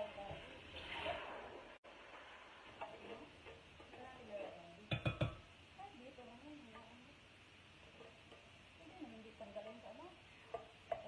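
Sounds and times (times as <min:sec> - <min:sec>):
utensil clinking on metal pot: 0:04.9 - 0:05.4.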